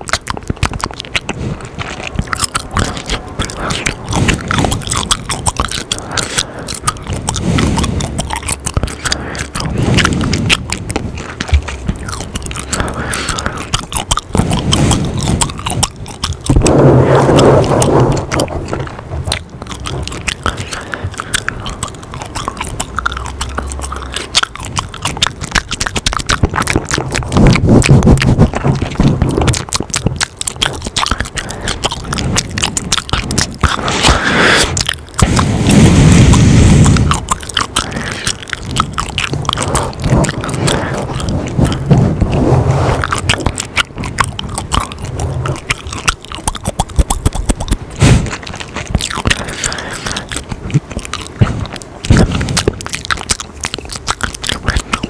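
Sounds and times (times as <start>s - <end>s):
gum chewing mouth sounds: 0.0s - 55.0s.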